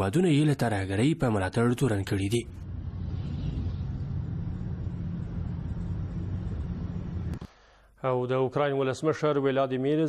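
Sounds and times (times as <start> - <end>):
military vehicles engine rumble: 2.6 - 7.4.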